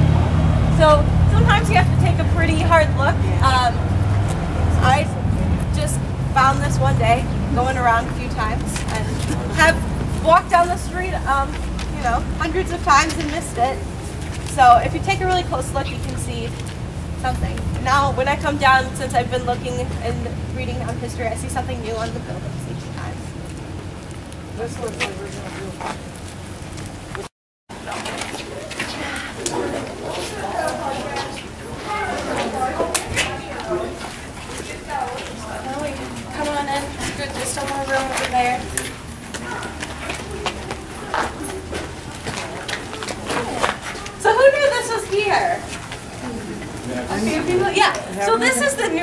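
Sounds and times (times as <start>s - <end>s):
faint voices: 0.0s - 23.4s, 27.0s - 49.0s
vehicle engine humming: 0.0s - 49.0s.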